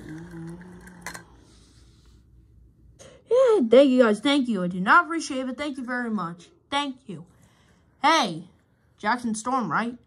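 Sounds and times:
person humming: 0.0 - 1.4.

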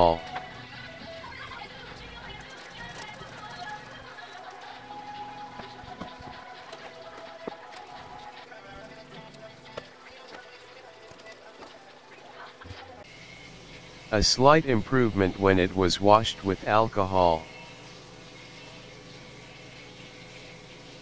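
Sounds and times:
quiet background music: 0.0 - 21.0.

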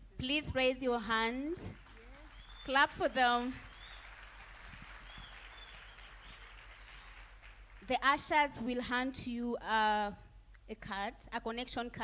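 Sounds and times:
congregation applauding: 1.7 - 8.0.

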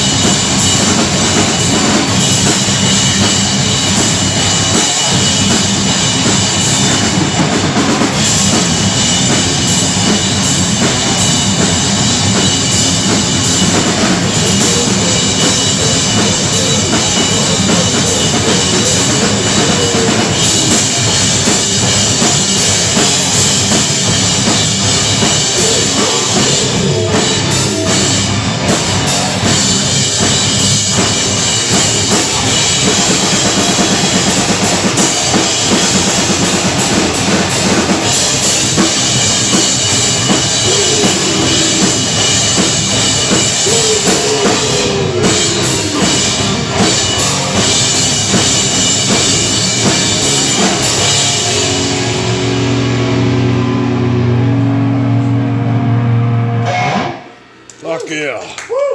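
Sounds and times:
bass guitar: 0.0 - 57.9
drum kit pounding: 0.0 - 58.4
distorted electric guitars: 0.0 - 58.5.

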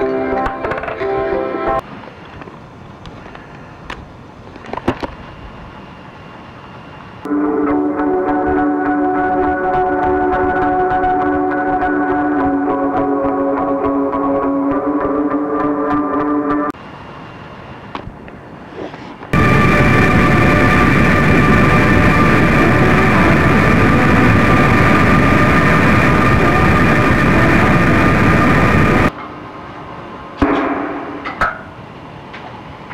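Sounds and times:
harsh noise wall: 5.2 - 17.8, 19.3 - 29.2
guitar music: 7.3 - 16.7
steady high tones: 19.4 - 29.1.

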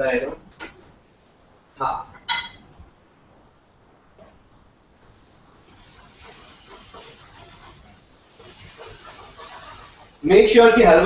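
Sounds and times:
food sizzling in a pan: 5.0 - 11.0.

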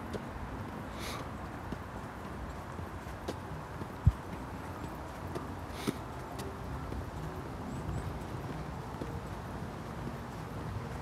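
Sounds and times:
footsteps on asphalt: 0.0 - 11.0.

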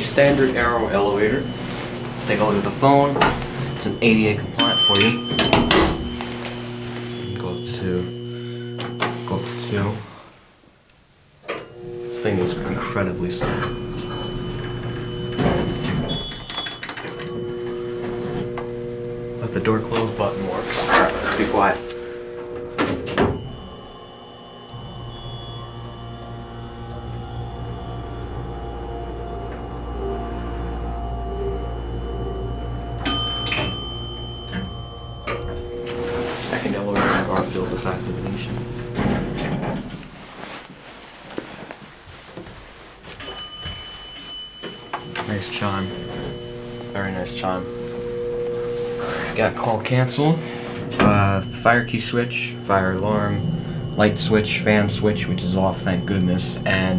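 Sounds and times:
elevator door sliding shut: 0.0 - 9.8, 11.6 - 31.0, 33.0 - 40.3
brief high tone: 0.0 - 10.2, 11.5 - 39.9, 43.2 - 56.9
steady hum: 0.0 - 56.9.

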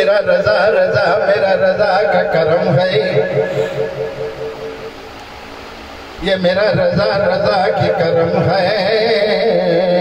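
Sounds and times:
steady background hiss: 0.0 - 10.0
held pulsing tone: 2.7 - 5.2
man singing into microphone: 6.2 - 10.0.

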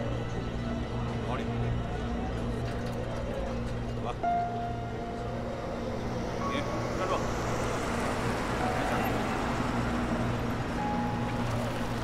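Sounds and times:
tyres on wet street: 1.8 - 12.0.

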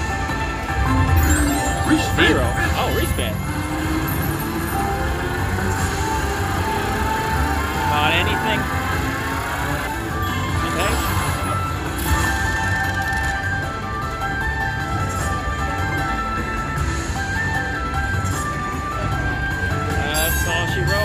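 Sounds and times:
slot machine bonus music: 0.0 - 21.0.

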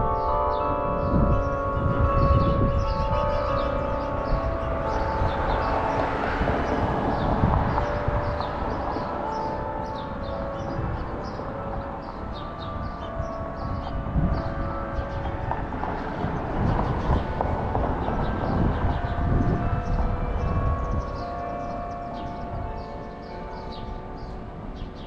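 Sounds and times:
carillon bells playing a tune: 0.0 - 25.0.

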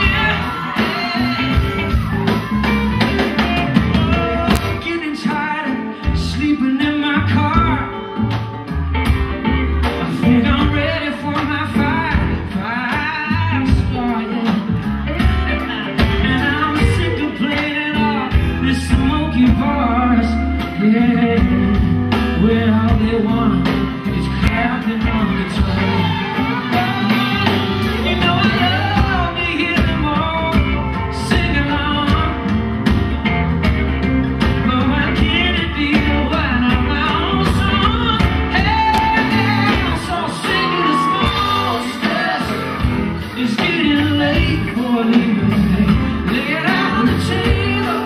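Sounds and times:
man singing: 0.0 - 2.7, 3.7 - 8.6, 9.9 - 33.0, 34.3 - 48.0
acoustic guitar: 0.0 - 48.0
drums: 0.0 - 48.0
electric bass: 0.0 - 48.0
electric guitar: 0.0 - 48.0
live rock band playing: 0.0 - 48.0.

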